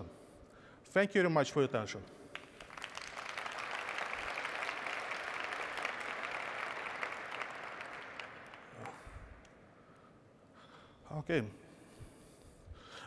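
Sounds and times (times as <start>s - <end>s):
large audience applauding: 2.3s - 9.5s.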